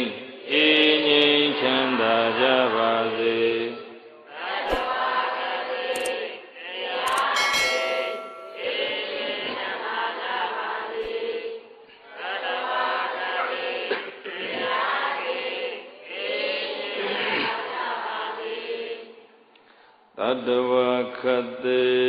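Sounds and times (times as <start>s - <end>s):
devotional chanting: 0.0s - 19.4s, 20.2s - 22.0s
brief ringing tone: 7.1s - 9.2s.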